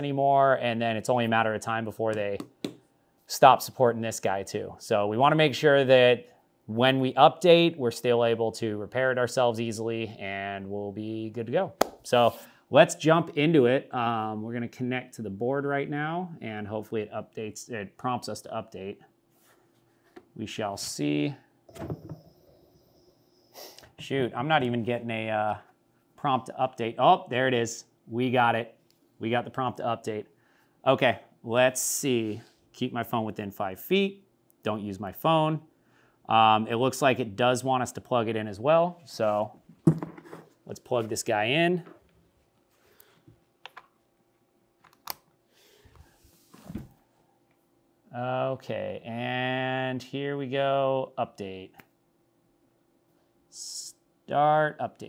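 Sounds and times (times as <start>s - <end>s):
sharp intake of breath: 22.6s - 24.0s.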